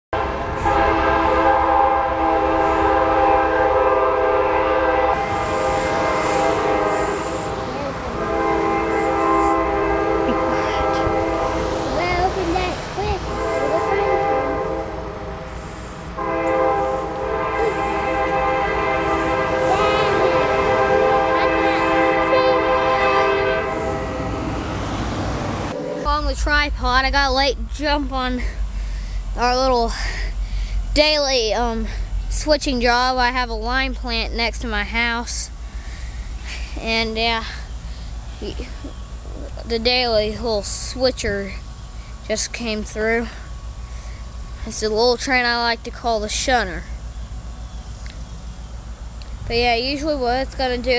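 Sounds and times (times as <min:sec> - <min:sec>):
locomotive air horn blasts: 0:00.2 - 0:11.9, 0:13.2 - 0:24.7.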